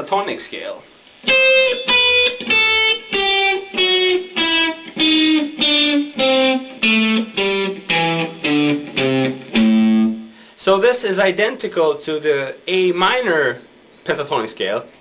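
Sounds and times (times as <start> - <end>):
electric guitar playing single notes: 1.2 - 10.4.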